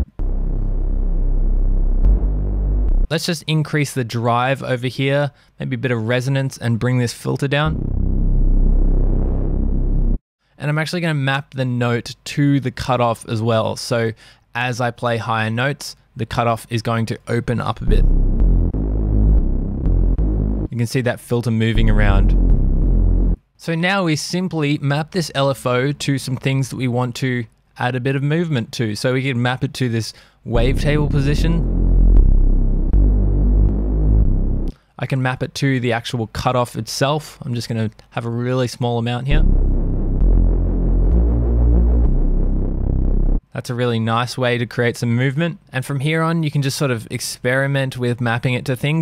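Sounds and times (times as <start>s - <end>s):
deep detuned bass synth note: 0.0s - 3.1s, 7.6s - 10.2s, 17.8s - 20.8s, 21.7s - 23.4s, 30.5s - 34.7s, 39.3s - 43.4s.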